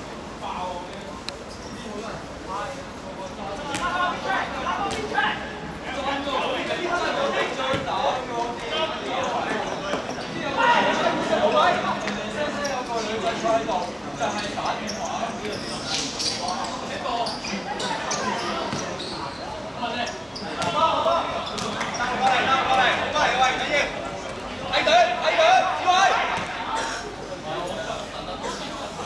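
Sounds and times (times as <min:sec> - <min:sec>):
players shouting: 0:20.4 - 0:27.1.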